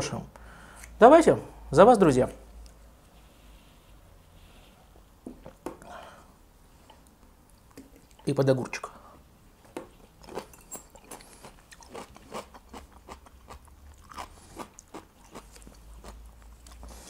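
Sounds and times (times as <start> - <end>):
man chewing crunchy cucumber: 9.8 - 17.0.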